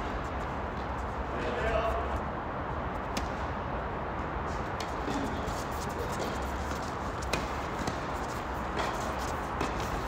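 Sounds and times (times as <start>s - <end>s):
tennis ball bouncing on hard court: 3.1s - 3.5s, 4.7s - 10.0s
tennis ball struck by racket: 3.1s - 3.5s, 6.2s - 10.0s.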